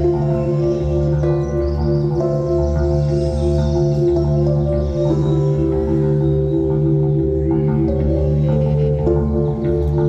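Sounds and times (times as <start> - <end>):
electric keyboard chords: 0.0 - 10.0.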